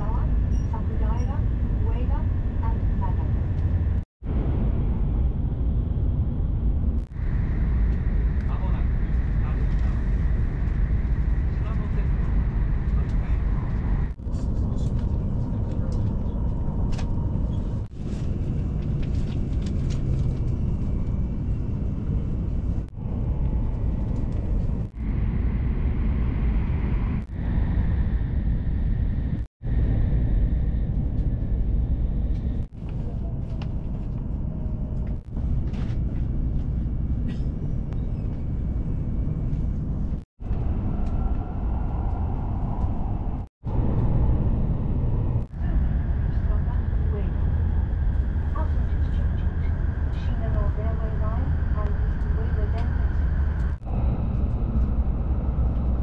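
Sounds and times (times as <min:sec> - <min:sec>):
train cabin rumble and rushing: 0:00.0 - 0:25.1, 0:30.0 - 0:56.0.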